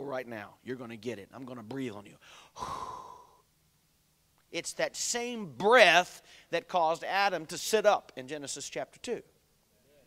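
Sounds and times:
man blowing into microphone: 0:02.2 - 0:03.5.

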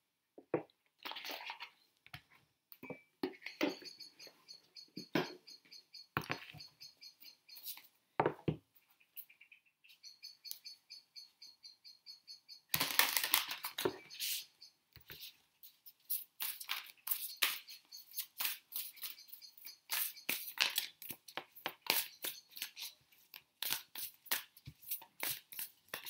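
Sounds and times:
small bird chirping: 0:03.0 - 0:07.9, 0:08.8 - 0:26.0
cards being shuffled: 0:21.8 - 0:26.0.

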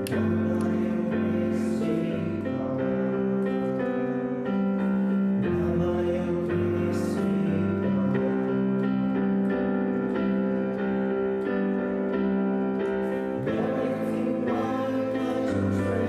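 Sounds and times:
digital piano chords: 0:00.0 - 0:16.0.

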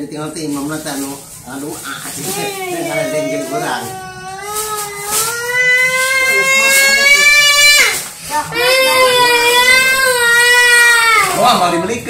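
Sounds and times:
small boy crying: 0:02.2 - 0:11.4.

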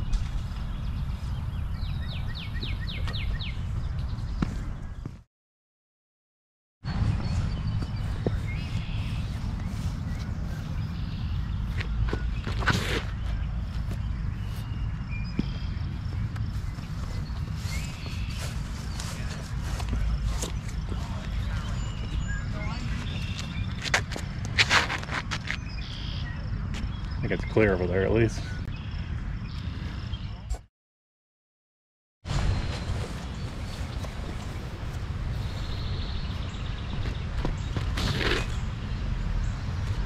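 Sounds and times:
steady low rumble: 0:06.9 - 0:12.5
footsteps: 0:15.3 - 0:25.6.

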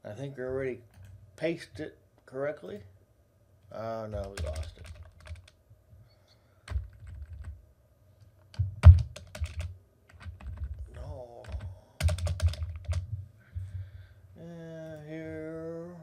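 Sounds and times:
computer keyboard typing: 0:04.1 - 0:05.6, 0:06.7 - 0:07.6, 0:08.5 - 0:13.1.

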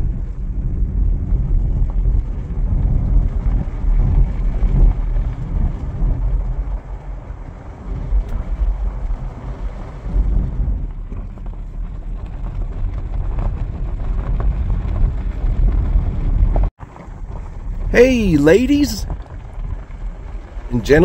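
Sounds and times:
wind buffeting microphone: 0:00.0 - 0:16.7.

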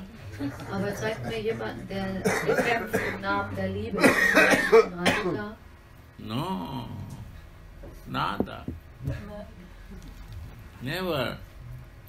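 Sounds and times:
person coughing: 0:02.2 - 0:03.2, 0:04.0 - 0:05.4.

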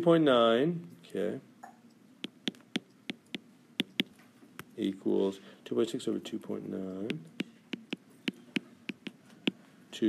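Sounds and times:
stylus tapping on glass screen: 0:01.6 - 0:04.7, 0:07.1 - 0:09.6.

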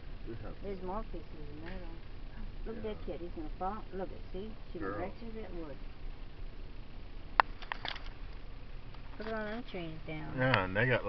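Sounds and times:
car road and engine noise: 0:00.0 - 0:11.0.

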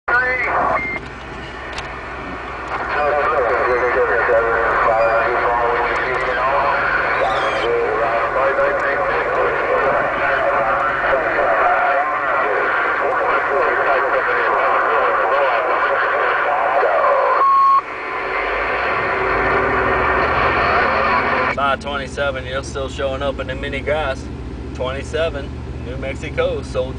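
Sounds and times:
garbled voices over radio: 0:00.1 - 0:00.8, 0:02.7 - 0:17.4
radio static: 0:00.1 - 0:22.2
short steady beep tone: 0:00.4 - 0:01.7, 0:17.4 - 0:17.9.

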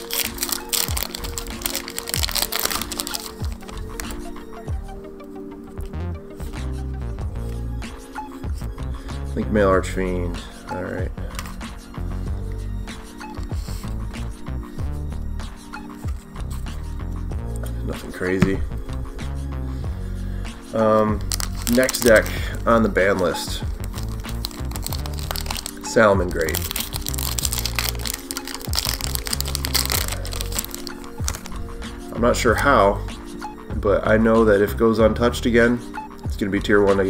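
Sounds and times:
foil wrapper crinkling: 0:00.0 - 0:04.2, 0:21.2 - 0:22.6, 0:23.8 - 0:31.6
trading cards flipped by hand: 0:00.0 - 0:04.3, 0:21.2 - 0:22.4, 0:23.2 - 0:25.8, 0:26.4 - 0:31.6
background music with bass line: 0:00.0 - 0:37.0.

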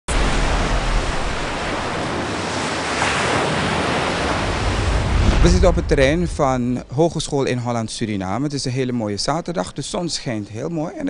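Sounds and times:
white water rushing: 0:00.1 - 0:08.0.

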